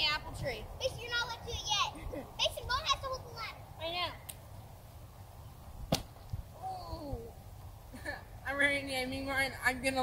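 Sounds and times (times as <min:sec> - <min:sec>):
child's voice: 0:00.8 - 0:04.2.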